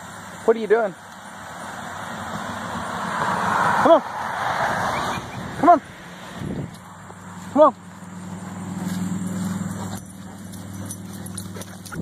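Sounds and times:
vehicle passing: 0:00.0 - 0:12.0.

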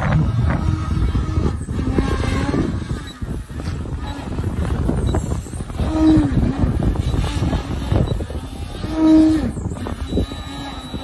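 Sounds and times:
electric motor and propeller whining: 0:00.0 - 0:11.0
wind rumble on microphone: 0:00.0 - 0:11.0.

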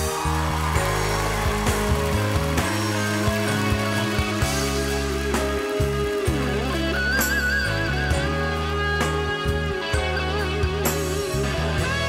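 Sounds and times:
bass notes: 0:00.0 - 0:12.0
electric guitar: 0:00.0 - 0:12.0.

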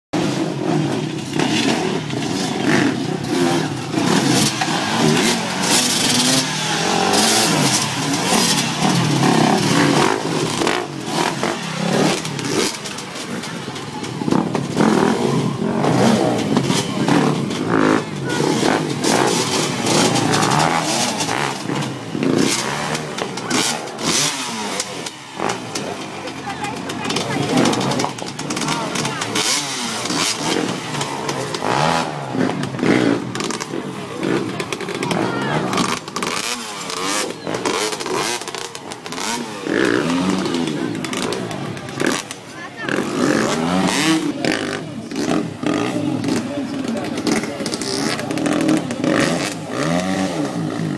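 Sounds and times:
crowd chatter: 0:00.2 - 0:50.9
dirt bike engines revving: 0:00.2 - 0:50.9.

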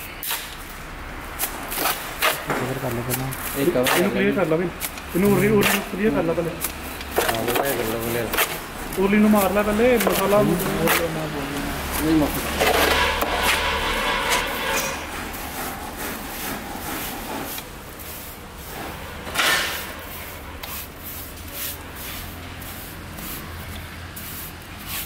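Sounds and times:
trowel scraping wet mortar: 0:01.4 - 0:25.0.

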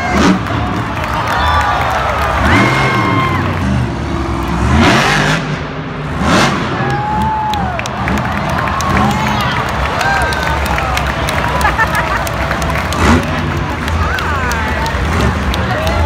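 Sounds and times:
loud bursts of noise: 0:00.0 - 0:16.0
stadium crowd cheering: 0:00.0 - 0:16.0
truck engine revving: 0:00.0 - 0:16.0.

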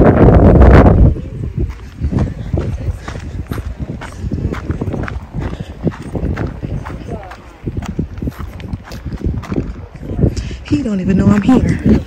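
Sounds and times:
wind rumble on microphone: 0:00.0 - 0:12.0
footsteps on paved trail: 0:01.0 - 0:12.0.

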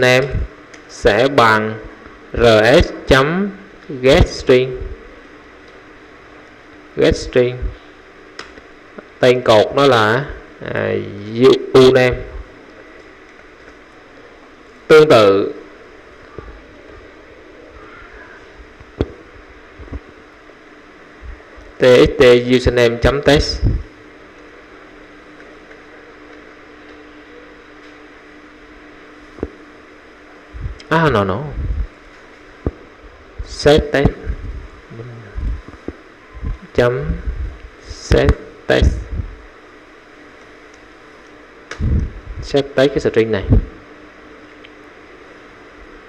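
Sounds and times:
background hiss: 0:00.0 - 0:46.0
faint hum: 0:00.0 - 0:46.0.

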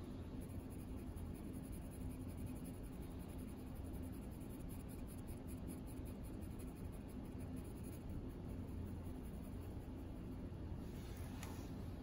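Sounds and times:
pencil scratching on paper: 0:00.3 - 0:10.2.

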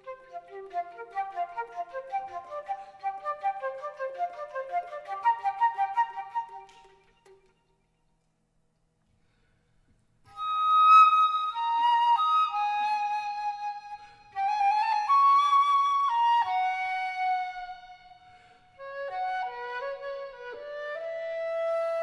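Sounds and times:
flute playing slow melody: 0:00.0 - 0:07.5, 0:10.3 - 0:22.0.

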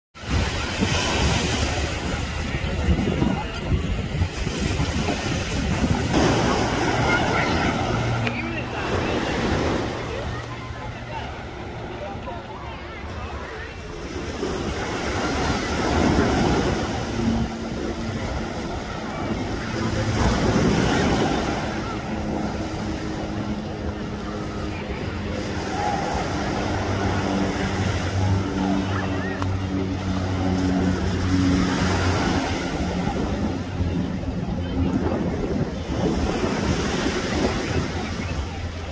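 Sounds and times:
boat engine running: 0:00.2 - 0:38.9
distant voices: 0:00.2 - 0:38.9
small waves washing ashore: 0:00.2 - 0:38.9
wind on microphone: 0:00.2 - 0:38.9.

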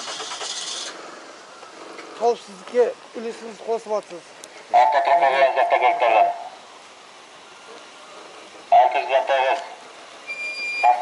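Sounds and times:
distant road traffic: 0:00.0 - 0:11.0
man speaking: 0:02.2 - 0:06.6, 0:08.7 - 0:09.8.

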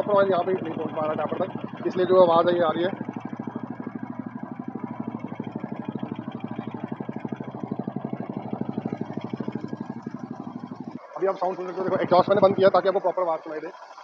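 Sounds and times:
motorcycle engine idling: 0:00.0 - 0:14.0.

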